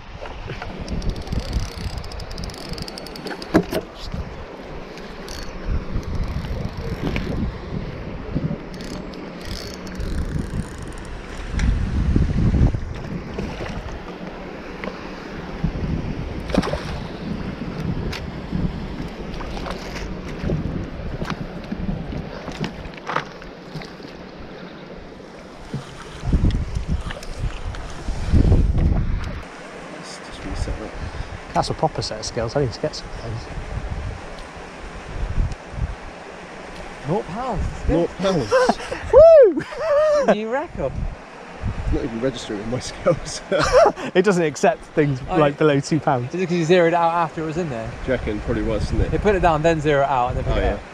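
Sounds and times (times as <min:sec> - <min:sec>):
wind rumbling on microphone: 0:00.0 - 0:29.6, 0:30.3 - 0:44.1, 0:47.6 - 0:50.9.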